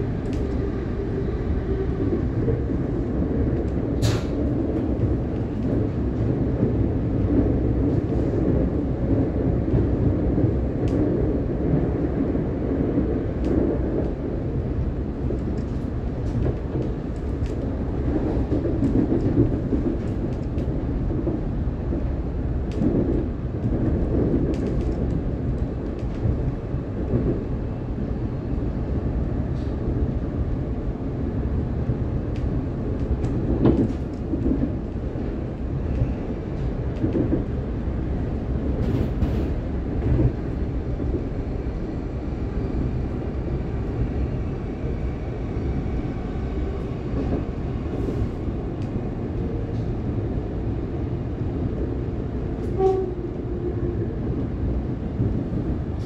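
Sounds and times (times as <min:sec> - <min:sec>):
train carriage rumbling on track: 0:00.0 - 0:56.0.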